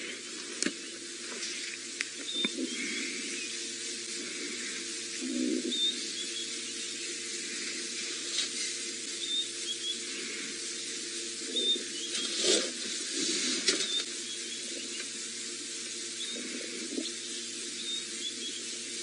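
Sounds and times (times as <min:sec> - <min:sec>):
steady high hiss: 0:00.0 - 0:19.0.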